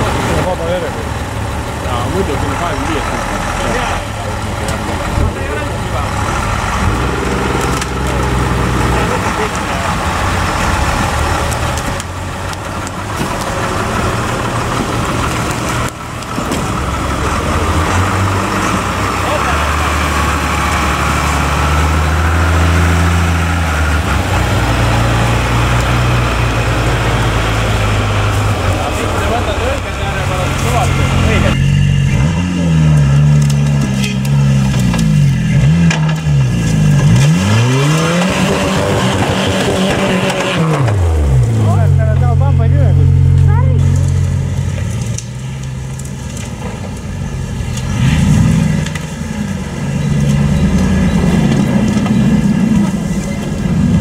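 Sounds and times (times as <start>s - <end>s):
off-road vehicle engines revving: 0.0s - 54.0s.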